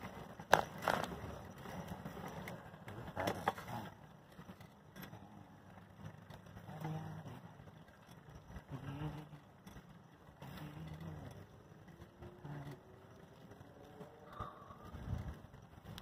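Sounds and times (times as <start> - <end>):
low hum: 0.0 - 16.0
vehicle road noise: 0.0 - 16.0.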